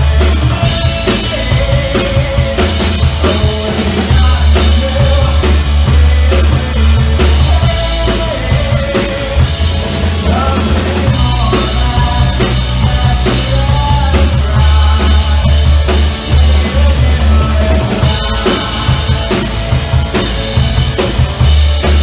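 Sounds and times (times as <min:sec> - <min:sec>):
bass guitar: 0:00.0 - 0:22.0
drum kit with heavy kick: 0:00.0 - 0:22.0
electric guitars: 0:00.0 - 0:22.0.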